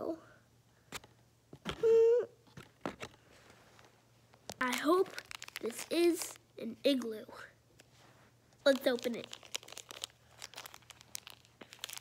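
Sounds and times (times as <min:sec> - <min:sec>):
plastic packet crinkling and tearing: 0:04.5 - 0:06.4, 0:08.6 - 0:12.0.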